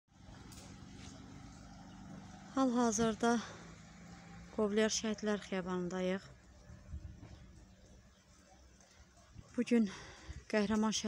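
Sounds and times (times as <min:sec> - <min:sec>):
low steady rumble: 0:00.2 - 0:10.5.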